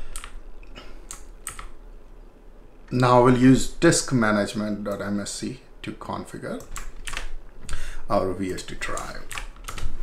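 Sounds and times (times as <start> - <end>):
computer keyboard keystrokes: 0.1 - 0.4, 1.1 - 1.8, 6.6 - 7.8, 8.4 - 9.9.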